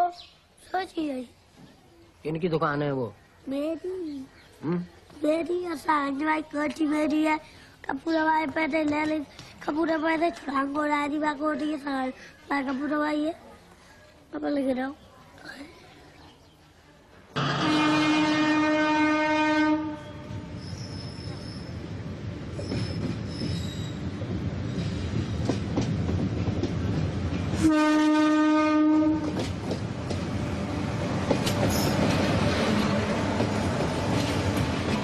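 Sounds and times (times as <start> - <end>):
train horn blasts: 17.4 - 20.7, 27.6 - 29.4
high wheel squeals: 20.6 - 21.8, 22.6 - 24.1
wheels rumbling on rails: 29.2 - 35.0.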